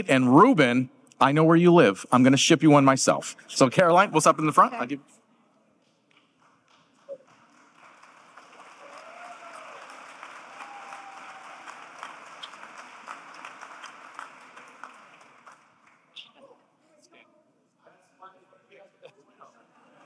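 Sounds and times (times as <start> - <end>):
audience applauding: 6.2 - 16.4.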